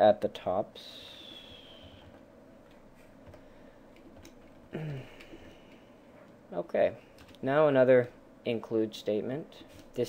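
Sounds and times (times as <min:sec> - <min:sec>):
low room hiss: 0:00.0 - 0:10.0
computer keyboard keystrokes: 0:02.7 - 0:04.6, 0:07.2 - 0:07.4.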